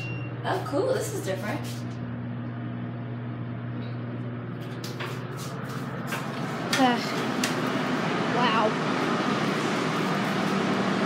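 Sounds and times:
elevator electric hum: 0.0 - 11.0.

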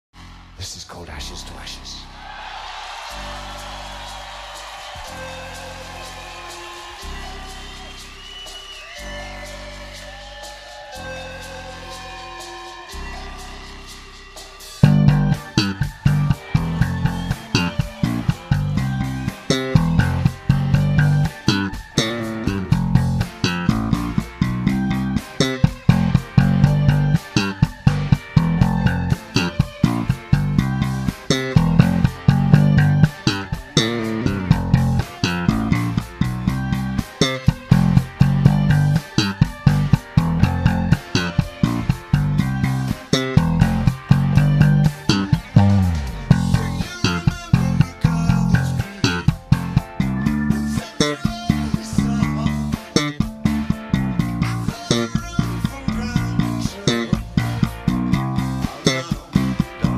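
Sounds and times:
full-band song recording: 1.8 - 59.9
electric bass playing bass line: 14.8 - 59.9.

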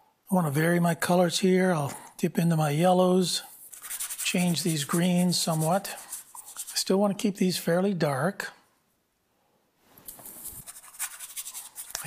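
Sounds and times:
bristle brush scrubbing canvas: 3.4 - 6.9, 10.3 - 12.0.

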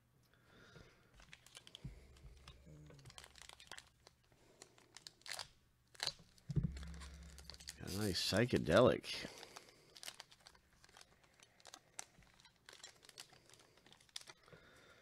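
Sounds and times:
foil wrapper crinkling and tearing: 1.2 - 14.5.

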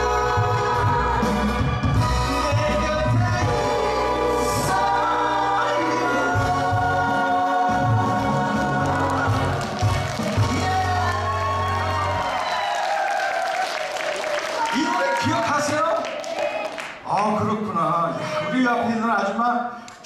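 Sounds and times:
bass: 0.0 - 12.7
backing singers: 0.0 - 15.3
man singing: 2.0 - 9.6, 10.3 - 11.7
live band playing: 6.4 - 12.1.

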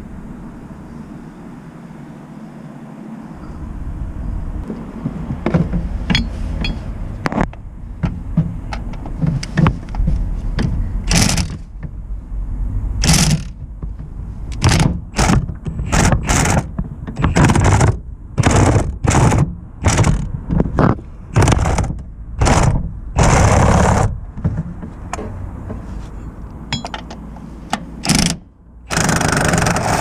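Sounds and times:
ratchet clicking: 11.1 - 11.6, 13.0 - 13.5.

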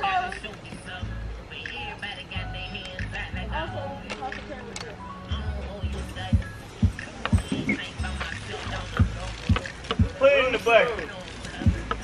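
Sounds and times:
faint voices: 0.0 - 12.0
music with thumping bass beat: 5.3 - 10.3, 11.6 - 12.0.

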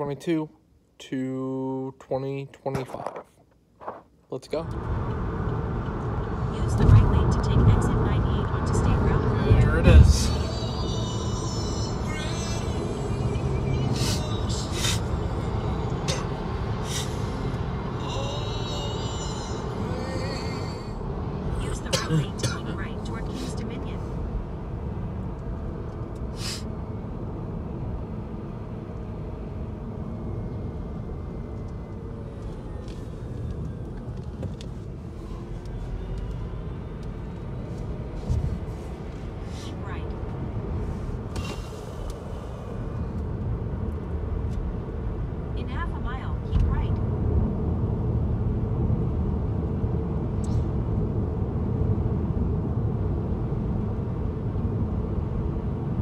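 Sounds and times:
road and engine rumble: 0.0 - 56.0.

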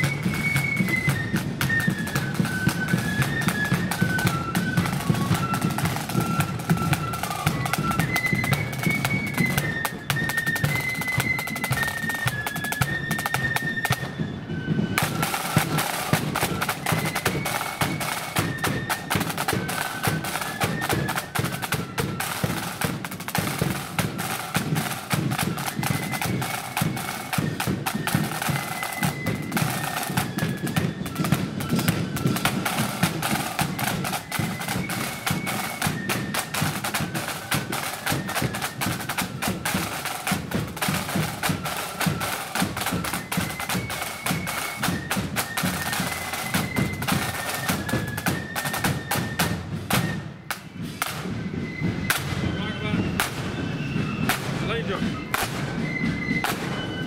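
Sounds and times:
high flute melody: 0.0 - 57.0
side drum rolls: 0.0 - 57.0.

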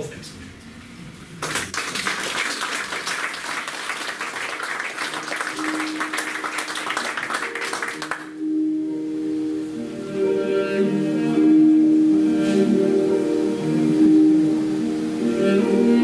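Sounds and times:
audience applauding: 1.4 - 8.4
music with low held notes: 5.4 - 16.0.

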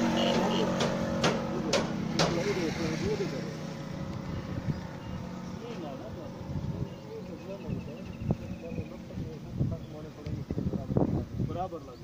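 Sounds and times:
people talking: 0.2 - 3.6, 5.5 - 12.0.

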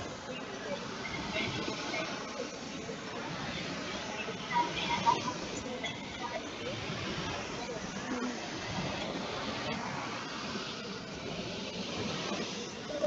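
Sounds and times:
faint indistinct speech: 0.0 - 13.0
steady hiss: 0.0 - 13.0.

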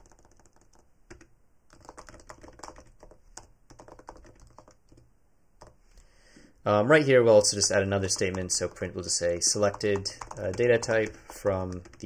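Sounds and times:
computer keyboard typing: 0.0 - 5.8, 8.0 - 9.0, 9.6 - 12.0.

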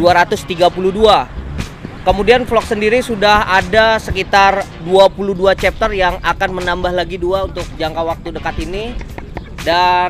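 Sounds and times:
man speaking: 0.0 - 1.3, 2.0 - 9.0, 9.6 - 10.0
background music: 0.0 - 10.0.

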